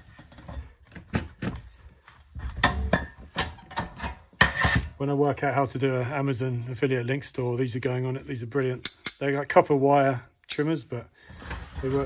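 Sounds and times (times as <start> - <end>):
cable cutters snapping through pipe: 10.5 - 10.8.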